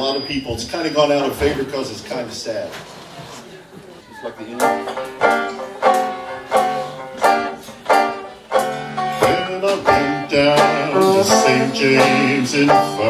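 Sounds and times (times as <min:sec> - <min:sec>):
banjo strumming slow chords: 0:04.6 - 0:13.0.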